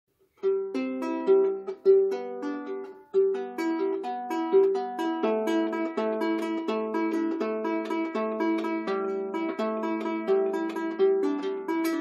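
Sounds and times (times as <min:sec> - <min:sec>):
lyre strings plucked: 0:00.3 - 0:12.0.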